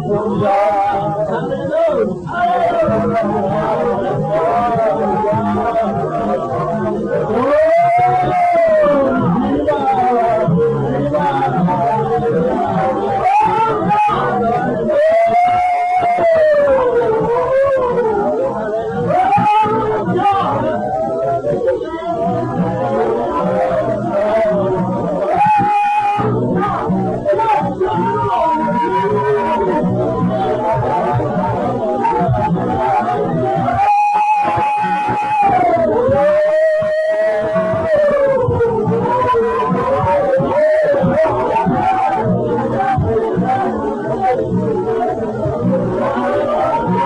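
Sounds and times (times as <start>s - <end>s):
gospel church music: 0.0s - 47.0s
person singing a long note: 0.0s - 47.0s.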